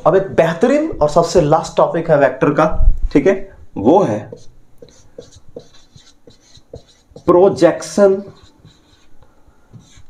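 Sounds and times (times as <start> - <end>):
marker writing on whiteboard: 4.2 - 10.0
man speaking: 7.2 - 8.5.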